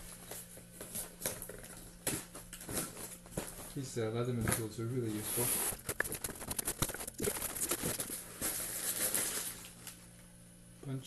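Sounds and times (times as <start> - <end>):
rustling of plastic packaging: 5.0 - 10.1
cardboard box tape tearing: 5.2 - 9.7.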